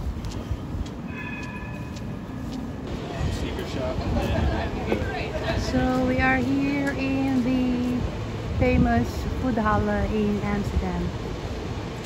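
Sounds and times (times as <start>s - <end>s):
footsteps: 0.0s - 8.2s
low steady city rumble: 0.0s - 12.0s
high-pitched squeal: 1.1s - 2.6s
passers-by talking: 1.1s - 11.2s.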